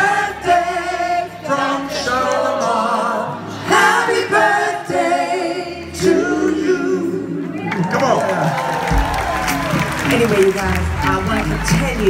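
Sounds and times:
group singing live: 0.0 - 7.8
band playing: 0.0 - 12.0.

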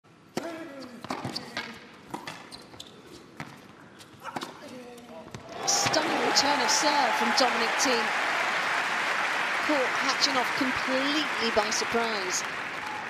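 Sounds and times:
crowd applause: 5.5 - 13.0.

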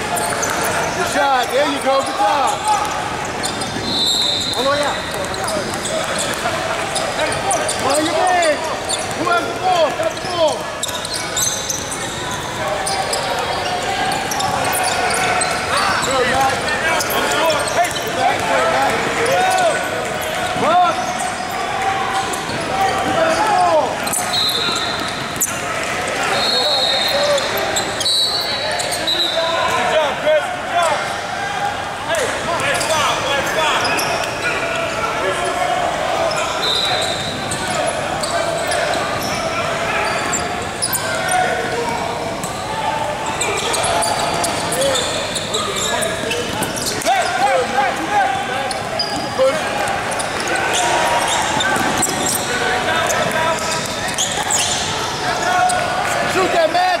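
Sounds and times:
hubbub of echoing voices: 0.0 - 57.0.

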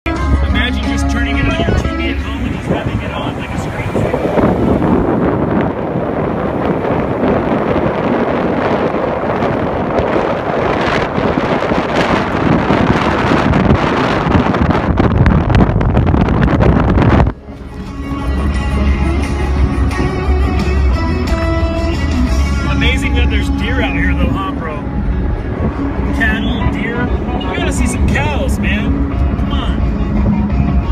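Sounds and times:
music playing: 0.1 - 5.0, 17.3 - 30.9
vehicle road noise: 0.1 - 30.9
wind rushing through open window: 0.5 - 18.1, 22.6 - 30.9.

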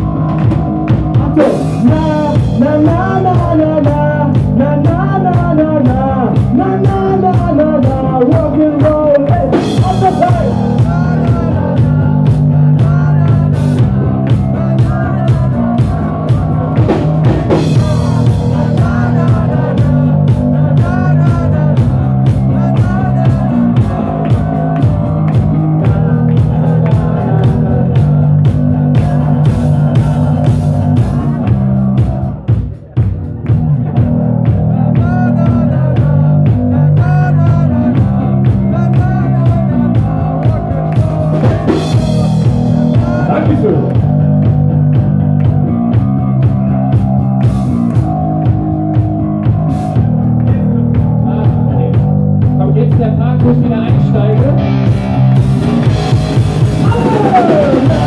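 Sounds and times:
distorted electric guitars: 0.0 - 58.0
drum kit: 0.0 - 58.0
live rock band playing: 0.0 - 58.0.

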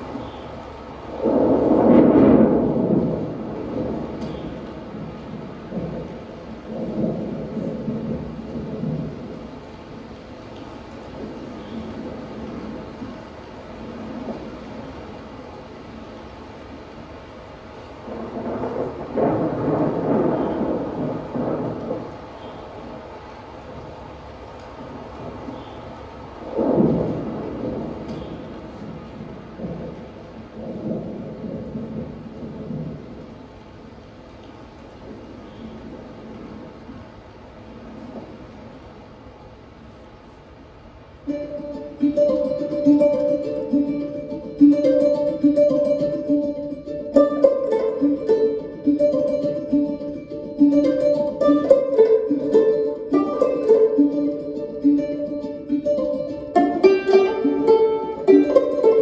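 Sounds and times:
low thunder-like rumble: 0.0 - 40.0, 41.0 - 59.0.

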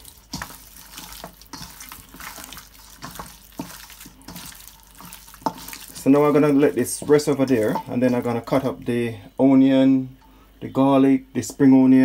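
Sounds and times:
hands squelching raw chicken: 0.0 - 8.4
meat slapping: 0.0 - 8.6.

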